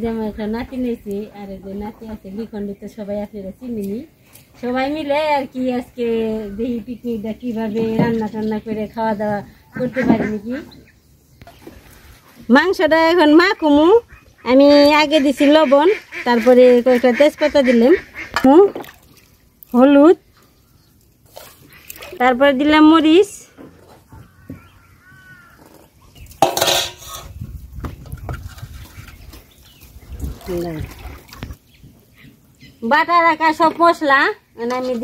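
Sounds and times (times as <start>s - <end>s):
women's voices: 0.0s - 10.9s, 12.4s - 18.8s, 19.7s - 20.2s, 22.2s - 23.6s, 30.4s - 30.9s, 32.8s - 35.0s
steel bowls and pots clattering: 25.7s - 27.4s.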